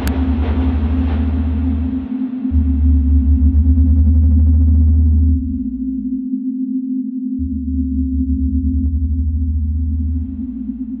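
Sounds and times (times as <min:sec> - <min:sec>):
flickering bass drone: 0:00.0 - 0:11.0
low synthesizer hum: 0:00.0 - 0:11.0.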